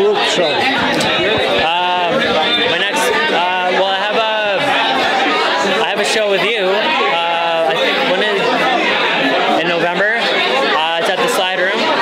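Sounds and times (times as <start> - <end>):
man talking: 0.0 - 4.7, 5.6 - 8.6, 9.5 - 11.9
crowd chatter: 0.0 - 12.0.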